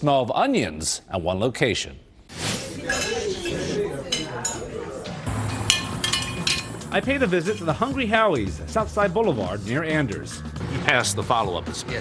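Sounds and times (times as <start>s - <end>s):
indistinct chatter: 2.6s - 6.9s
dishes and cutlery clinking: 2.7s - 6.9s.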